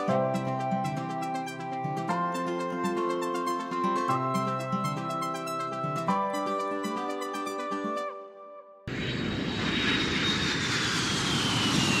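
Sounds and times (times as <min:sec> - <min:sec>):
cheerful keyboard tune: 0:00.0 - 0:08.8.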